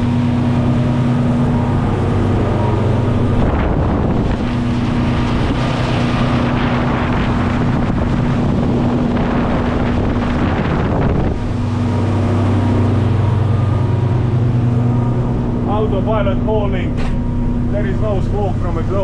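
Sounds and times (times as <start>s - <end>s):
boat diesel engines humming: 0.0s - 19.0s
rush of hull spray and wind: 0.0s - 19.0s.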